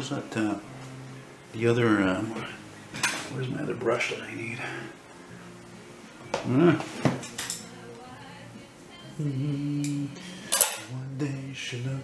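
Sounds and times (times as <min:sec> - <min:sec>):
man humming low notes: 0:06.3 - 0:06.9, 0:09.2 - 0:12.0.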